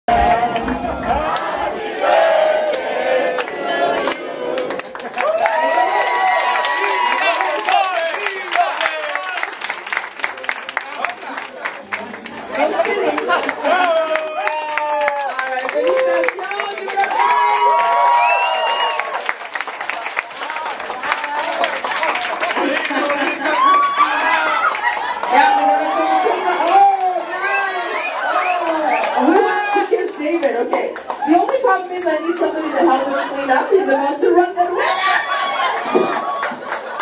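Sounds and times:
crowd singing a birthday song: 0:00.0 - 0:05.0
people clapping: 0:00.1 - 0:34.4, 0:35.3 - 0:37.0
crowd cheering and whooping: 0:04.6 - 0:09.4, 0:13.6 - 0:19.4, 0:21.2 - 0:29.9, 0:34.8 - 0:37.0.

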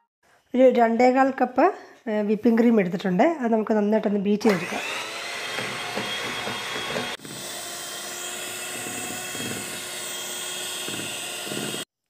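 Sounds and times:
electric hand mixer whining: 0:04.5 - 0:11.9.

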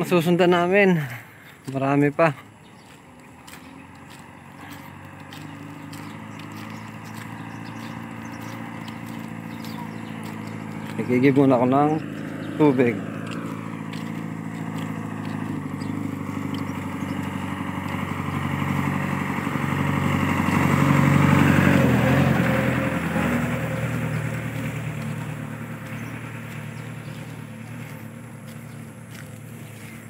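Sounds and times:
diesel truck engine idling: 0:00.0 - 0:30.0.

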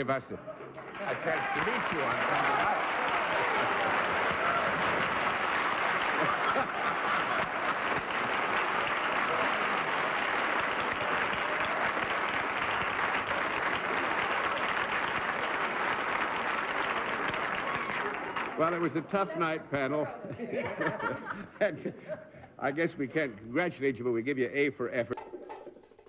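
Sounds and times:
audience applauding: 0:00.8 - 0:19.6.

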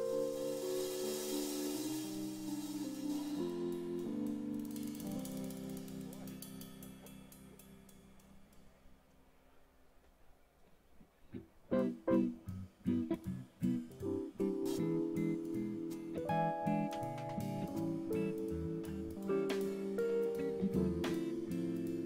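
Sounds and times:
live band held chords: 0:00.0 - 0:07.2, 0:11.8 - 0:22.0.

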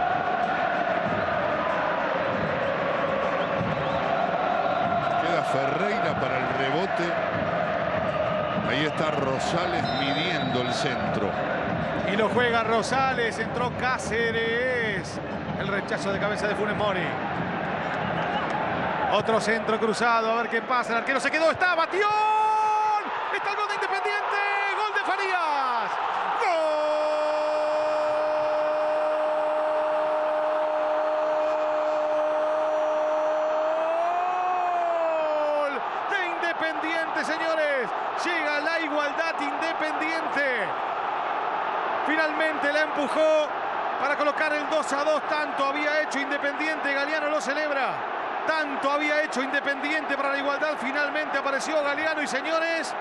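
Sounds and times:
stadium crowd noise: 0:00.0 - 0:53.0
rapid excited shouting: 0:21.0 - 0:53.0.

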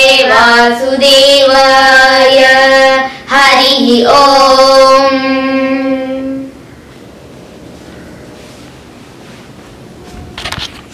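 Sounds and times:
room hiss: 0:00.0 - 0:10.9.

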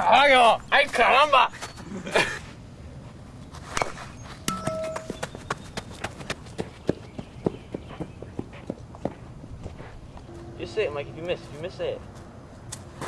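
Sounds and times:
brief steady tone: 0:04.5 - 0:05.3, 0:10.3 - 0:11.2.

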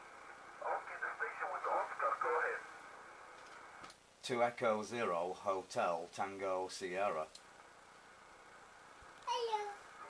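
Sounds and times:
steady radio band hiss: 0:00.0 - 0:10.0
thin voice over radio speaker: 0:00.6 - 0:02.7.

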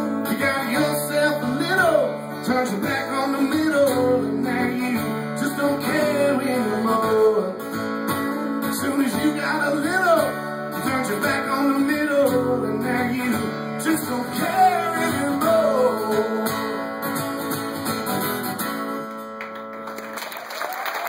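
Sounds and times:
person singing wordlessly: 0:00.0 - 0:07.6, 0:08.7 - 0:16.9
acoustic guitar strumming: 0:00.0 - 0:19.8
audience applauding and cheering: 0:19.2 - 0:21.0.

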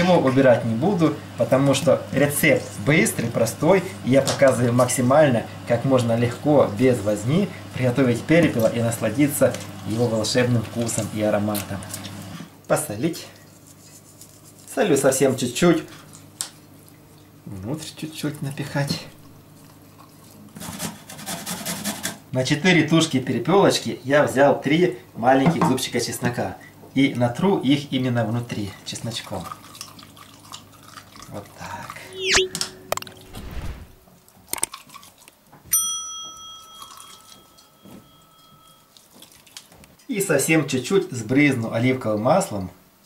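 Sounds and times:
button click: 0:32.1 - 0:33.9
bright bell ding: 0:35.7 - 0:38.9.

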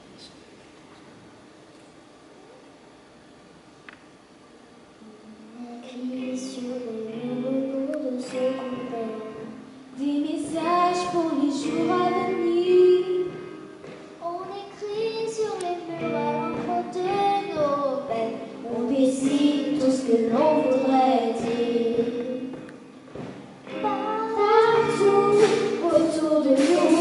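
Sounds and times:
girl singing into a microphone: 0:05.0 - 0:27.0.

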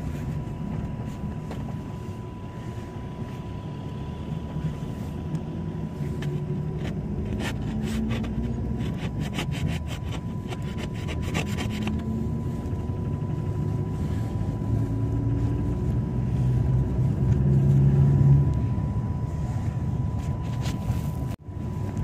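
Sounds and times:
faint high whine: 0:00.0 - 0:22.0
minibus engine and road rumble: 0:00.0 - 0:22.0.

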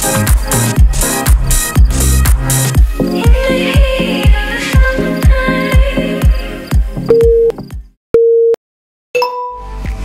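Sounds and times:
background music with a beat: 0:00.0 - 0:07.9
interval timer beeps: 0:07.1 - 0:07.6.

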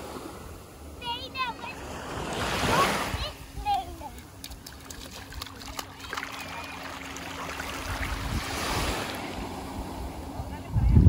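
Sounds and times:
wave washing up sandy shore: 0:04.6 - 0:10.3.

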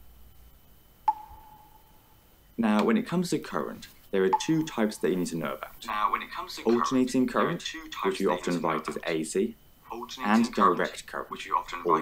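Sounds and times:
single clear chime: 0:01.1 - 0:02.0.

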